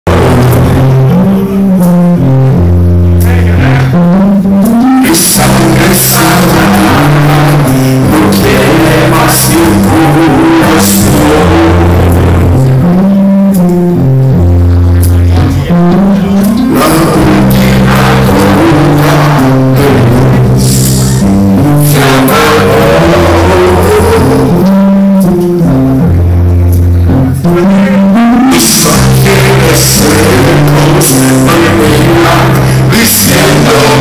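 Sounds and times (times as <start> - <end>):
drums: 0.0 - 34.0
electric bass long notes: 0.0 - 34.0.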